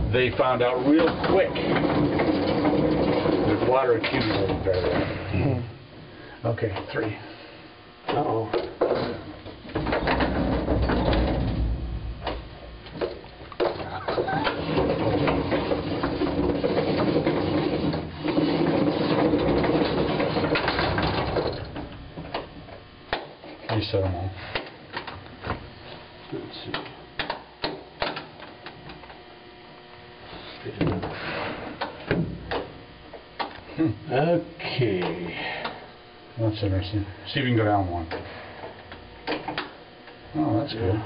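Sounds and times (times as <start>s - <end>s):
freight elevator humming: 0.0s - 41.0s
scattered clicks and knocks: 0.1s - 5.1s, 8.0s - 25.6s, 26.6s - 29.2s, 31.8s - 33.7s, 34.9s - 35.8s, 38.0s - 40.2s.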